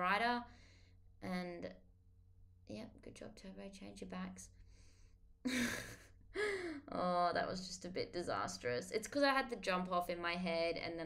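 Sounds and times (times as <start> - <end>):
woman sighing: 5.5 - 6.9
woman gasping breath: 6.3 - 6.9.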